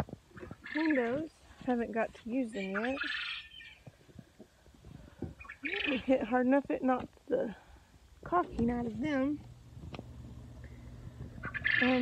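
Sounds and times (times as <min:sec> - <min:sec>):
raspy bird call: 0:02.6 - 0:03.8, 0:11.4 - 0:12.0
low rumble: 0:08.3 - 0:12.0.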